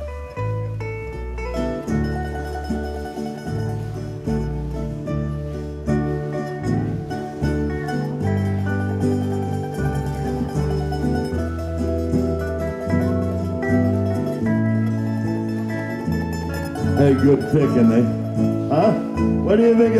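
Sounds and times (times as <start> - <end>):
country band playing: 0.0 - 19.9
picked string solo: 0.0 - 19.9.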